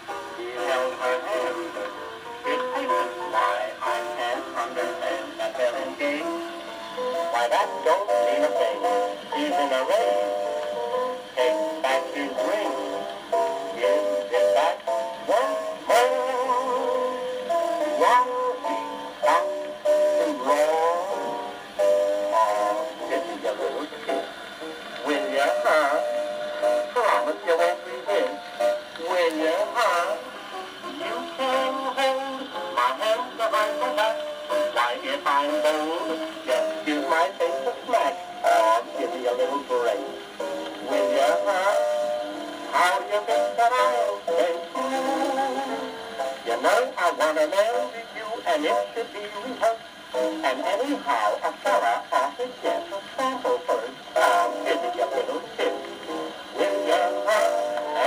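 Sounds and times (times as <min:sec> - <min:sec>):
person singing with instruments: 0:00.0 - 0:58.0
record surface crackle: 0:00.1 - 0:58.0.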